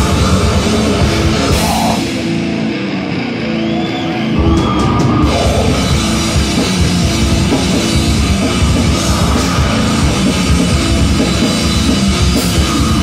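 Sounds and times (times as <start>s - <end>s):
fast dense drumming: 0.0s - 2.4s, 4.5s - 13.0s
distorted electric guitar: 0.0s - 13.0s.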